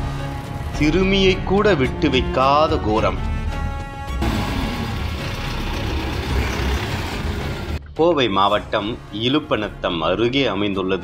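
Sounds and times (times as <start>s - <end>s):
background music: 0.0s - 11.0s
loud rushing noise: 4.2s - 7.8s.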